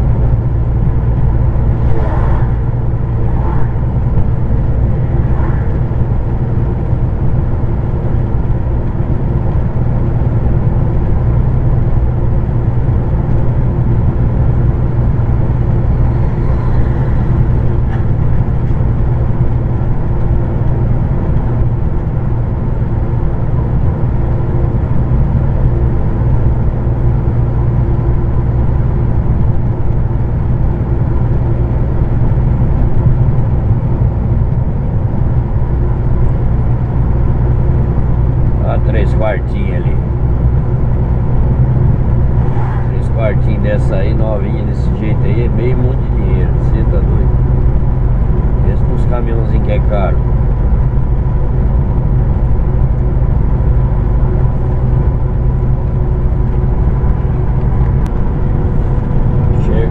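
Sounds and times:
road noise inside cab: 0.0s - 59.9s
truck diesel engine drone: 0.0s - 59.9s.

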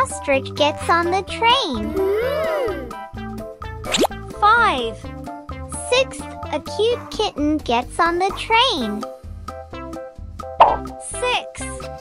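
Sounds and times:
light children's music: 0.0s - 12.0s
cartoon plop sound effect: 3.9s - 4.2s, 10.6s - 10.9s.

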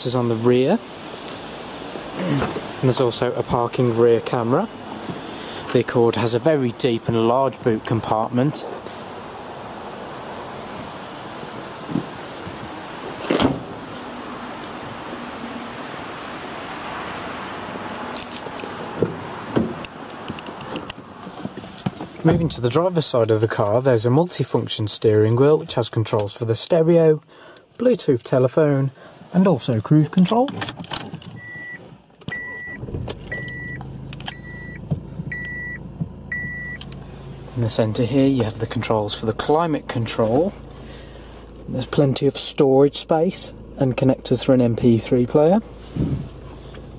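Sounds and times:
room noise hiss: 0.0s - 5.6s
car boot lid thump: 13.2s - 13.8s, 19.0s - 19.8s
car door clicks and knocks: 13.2s - 13.8s, 19.0s - 21.0s
high warning chime beeps: 31.4s - 36.8s
diesel car engine idling: 32.4s - 46.9s.

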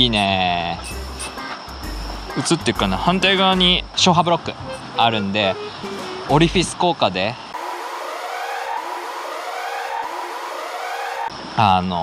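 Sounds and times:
siren-like warning tone: 0.0s - 6.8s, 7.6s - 11.3s.

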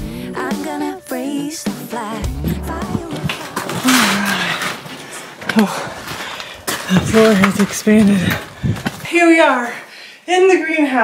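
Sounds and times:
door scraping with low squeal: 2.2s - 4.6s.

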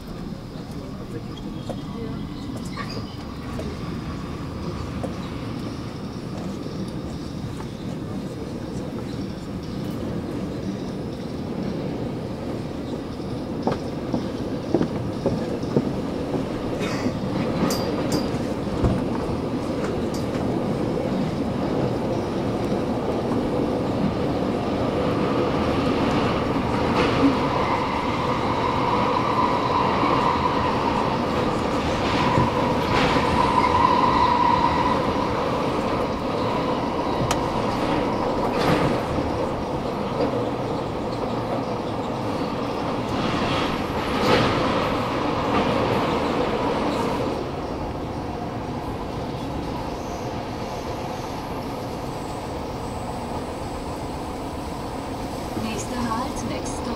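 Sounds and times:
train rumble inside carriage: 0.0s - 56.9s.

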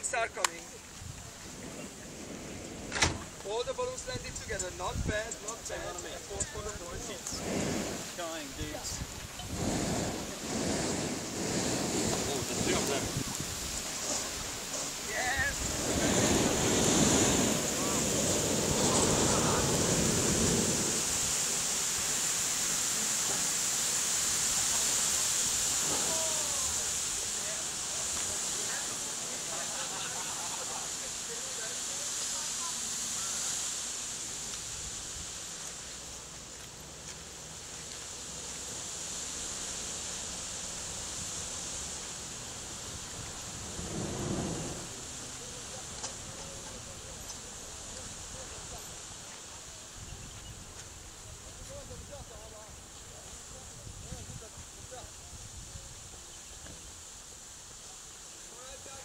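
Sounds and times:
wind on microphone: 0.9s - 5.4s, 6.3s - 21.8s, 42.9s - 45.0s.

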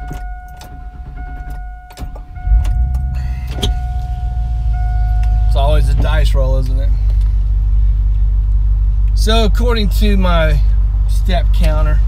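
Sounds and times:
high warning tone: 0.0s - 6.4s
car engine starting and idling: 0.0s - 12.0s.

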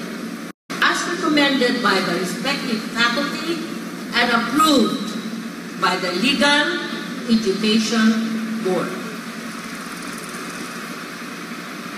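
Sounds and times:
crowded hall hiss and hum: 0.0s - 11.9s.

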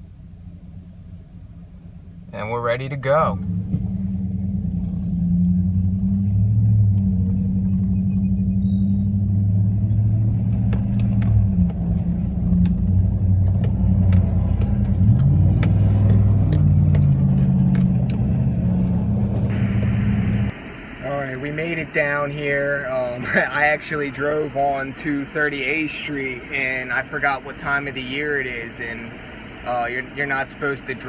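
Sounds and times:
truck engine rumble: 0.0s - 31.0s
hiss: 19.5s - 21.1s.

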